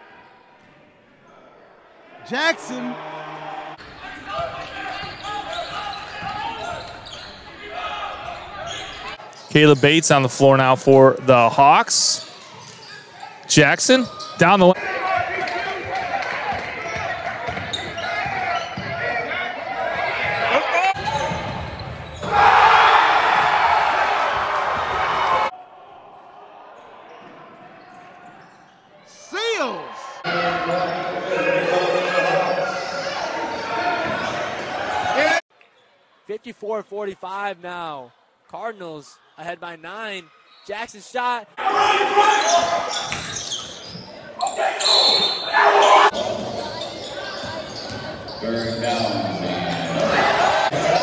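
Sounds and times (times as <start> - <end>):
echoing voices in a hall: 0.0 - 38.4, 41.6 - 51.0
crowd noise in a gym: 0.0 - 51.0
voices: 9.5 - 12.2, 13.5 - 14.8.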